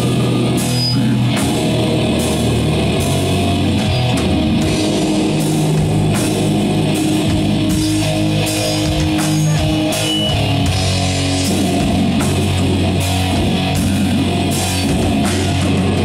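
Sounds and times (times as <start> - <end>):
distorted electric guitars and bass: 0.0 - 16.0
drum kit with cymbal crashes: 0.0 - 16.0.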